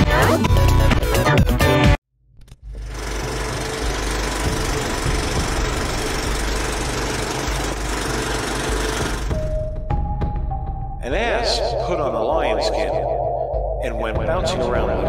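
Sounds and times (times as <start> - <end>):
film projector clatter with hiss: 2.8 - 9.4.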